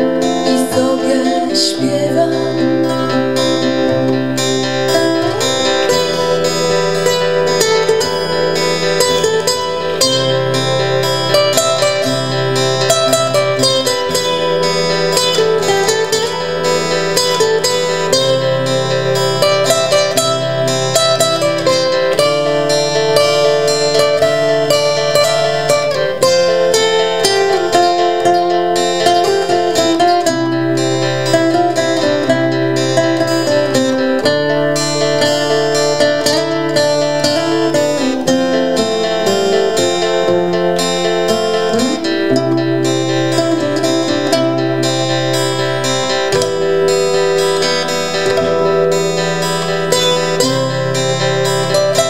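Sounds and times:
nylon-string guitar: 0.0 - 52.0
steel-string acoustic guitar: 0.0 - 52.0.

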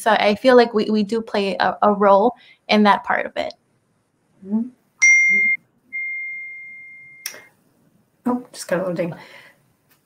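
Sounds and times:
electronic notification ding: 5.0 - 7.3.

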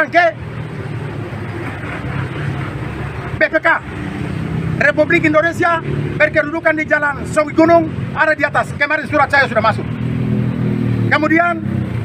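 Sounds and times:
man speaking: 0.0 - 0.4, 3.3 - 3.9, 4.8 - 9.9, 11.0 - 11.7
outdoor background noise: 0.0 - 12.0.

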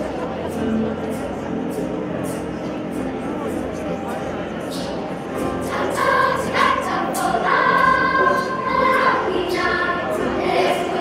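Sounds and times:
children's choir singing: 4.7 - 11.0.

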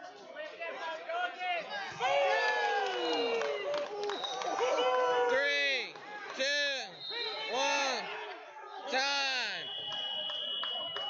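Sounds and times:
people yelling: 1.7 - 6.3.

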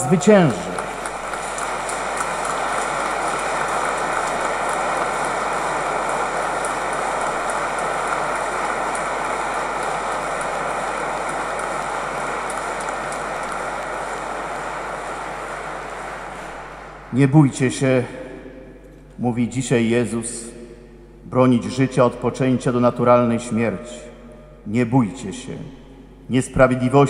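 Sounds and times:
congregation applauding: 0.0 - 17.2.

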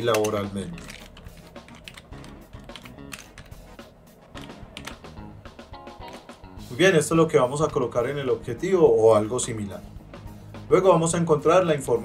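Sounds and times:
keyboard keys clicking: 0.0 - 3.7, 4.4 - 5.2
soft background music: 0.0 - 12.0.

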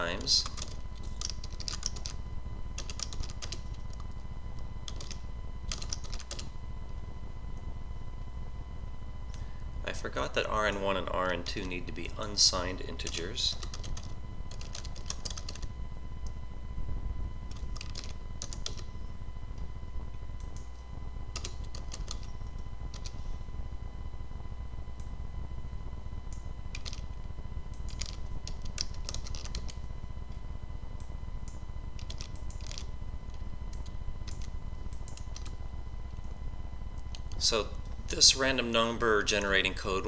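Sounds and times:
steady low hum: 0.0 - 40.0
typing on computer keyboard: 0.3 - 2.2, 2.8 - 4.1, 4.9 - 6.5, 13.0 - 15.7, 17.5 - 18.8, 21.4 - 22.3, 22.9 - 23.2, 26.7 - 27.1, 27.8 - 29.8, 32.0 - 32.9, 33.8 - 35.6.

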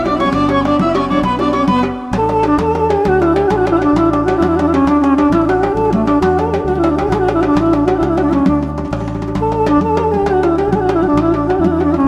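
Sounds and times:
duduk melody: 0.0 - 12.0
quick percussion beat: 0.0 - 12.0.

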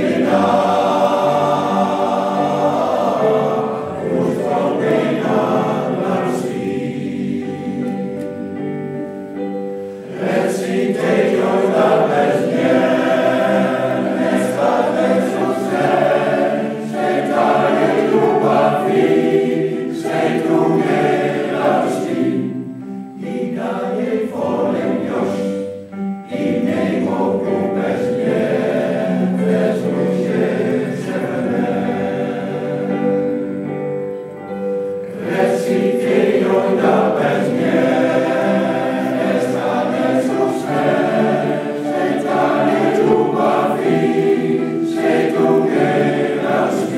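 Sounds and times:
men's choir singing: 0.0 - 8.8, 9.4 - 46.9.

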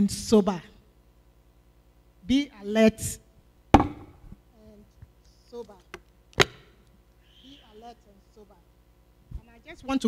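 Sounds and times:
sharp knock handling noise: 3.8 - 4.3.

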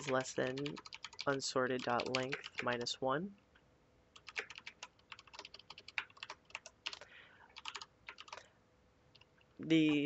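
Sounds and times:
keyboard typing: 0.0 - 2.8, 4.2 - 8.5.

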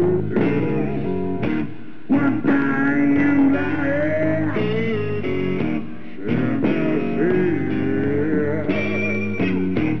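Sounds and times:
electric guitar with bending notes: 0.0 - 10.0
live rock band playing: 0.0 - 10.0.

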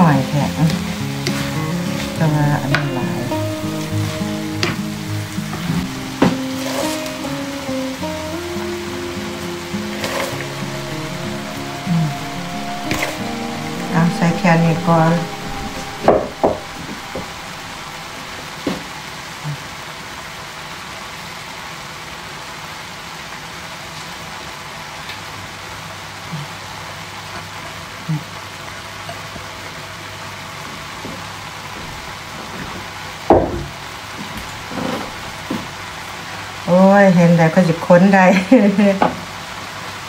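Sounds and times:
food sizzling in a frying pan: 0.4 - 19.2.

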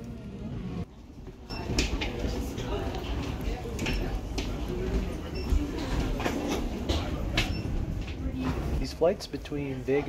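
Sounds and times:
footsteps on hollow floor: 1.0 - 8.9.

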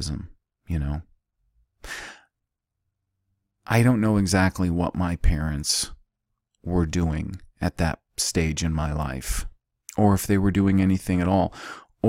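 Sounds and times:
man breathing close to microphone: 1.8 - 2.4, 11.5 - 12.0.

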